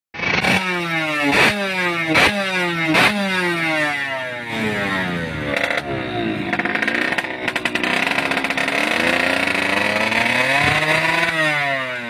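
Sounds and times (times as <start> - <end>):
motorbike engine revving: 0.2 - 12.0.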